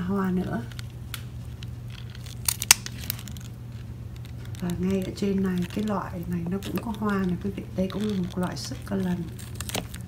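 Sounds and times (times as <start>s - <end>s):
scissors snipping: 4.2s - 10.0s.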